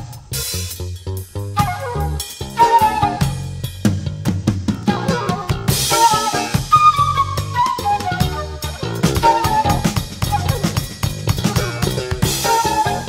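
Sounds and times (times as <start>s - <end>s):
bass line: 0.0s - 13.0s
drum kit: 0.0s - 13.0s.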